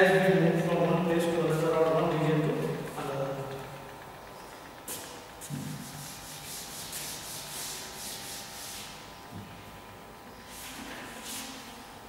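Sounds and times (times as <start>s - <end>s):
eraser wiping blackboard: 5.4s - 9.1s, 10.5s - 11.8s.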